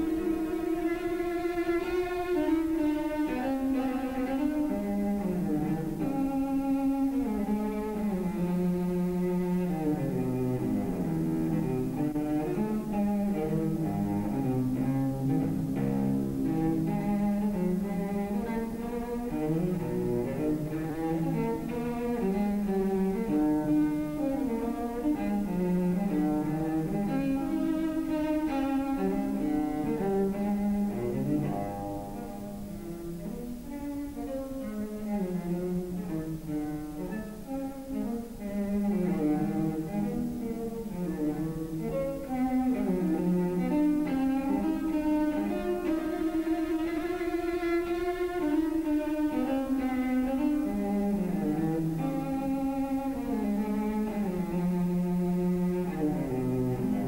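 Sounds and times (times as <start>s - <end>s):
cello melody on bowed strings: 0.0s - 57.0s.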